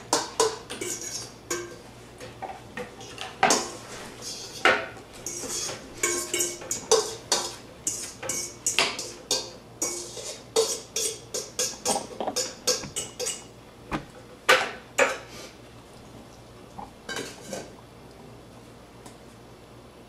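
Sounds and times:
spoon clinking against bowl: 5.2 - 13.5.

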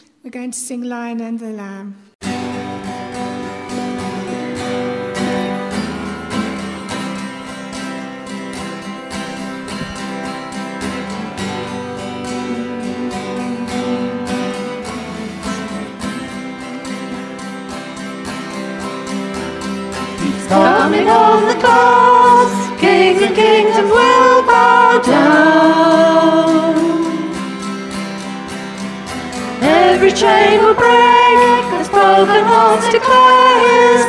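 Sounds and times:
strummed acoustic guitar: 2.2 - 34.0.

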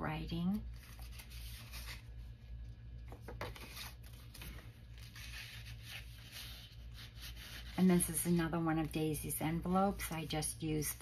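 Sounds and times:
low steady hum: 0.0 - 11.0
paper rustling: 3.1 - 6.8.

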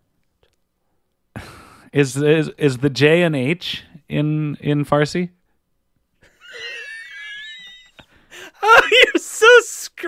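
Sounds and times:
man's high-pitched wheezing laugh: 6.2 - 9.8.

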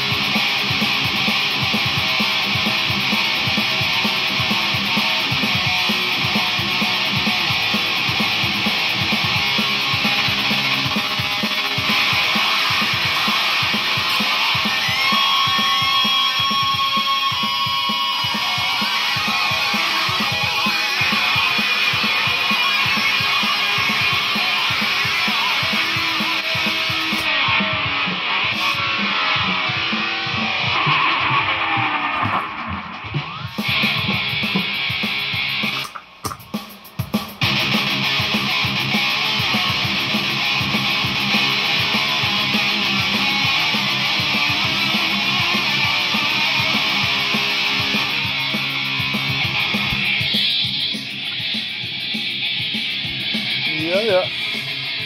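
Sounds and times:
distorted electric guitar riffing: 0.0 - 55.0.

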